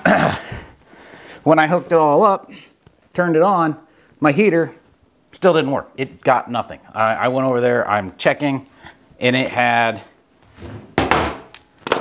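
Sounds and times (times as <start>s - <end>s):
object thunk on wooden workbench: 10.6s - 12.0s.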